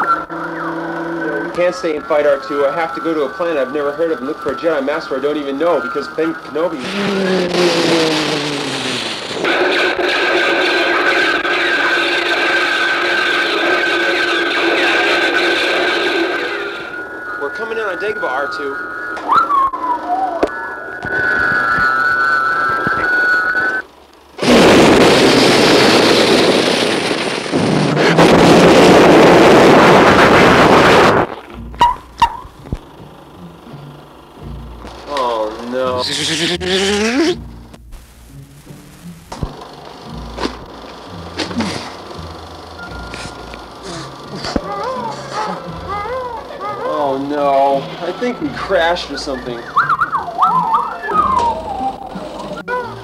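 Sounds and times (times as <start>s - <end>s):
high electronic warble: 0.0s - 23.8s, 24.4s - 53.0s
loud rushing noise: 6.7s - 17.1s, 24.4s - 31.3s
swooping whistled beeps: 16.8s - 23.8s, 49.0s - 52.6s.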